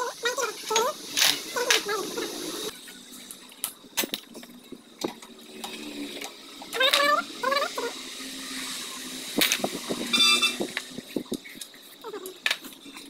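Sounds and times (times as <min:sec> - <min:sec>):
high rising and falling call: 0:10.1 - 0:10.6.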